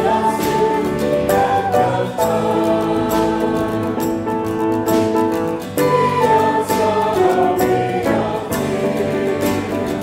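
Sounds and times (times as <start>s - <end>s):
mixed choir singing in harmony: 0.0s - 10.0s.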